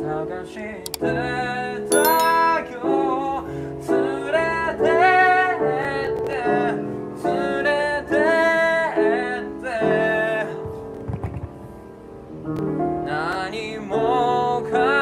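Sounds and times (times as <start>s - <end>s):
held piano chords: 1.9s - 3.2s.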